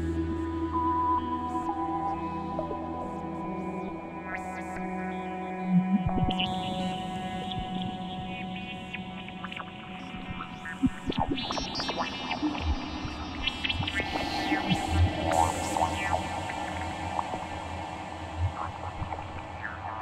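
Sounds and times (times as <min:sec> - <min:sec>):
sustained synthesizer tones: 0:00.0 - 0:20.0
hissy synth layer: 0:11.8 - 0:20.0
deep low drone: 0:13.8 - 0:19.9.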